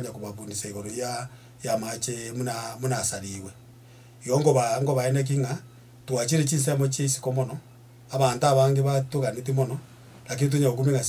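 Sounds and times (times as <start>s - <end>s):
man speaking into microphone: 0.0s - 3.6s, 4.2s - 11.0s.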